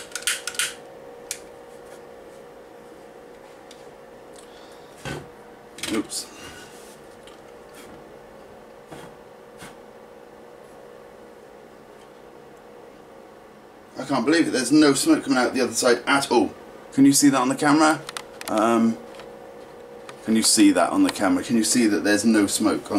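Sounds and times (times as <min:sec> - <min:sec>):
extractor fan humming: 0:00.0 - 0:22.9.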